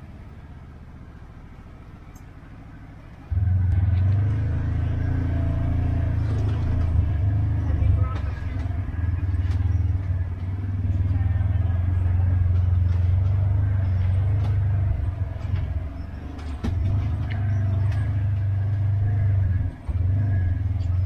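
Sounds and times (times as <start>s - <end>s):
utility vehicle engine droning: 0.0s - 21.0s.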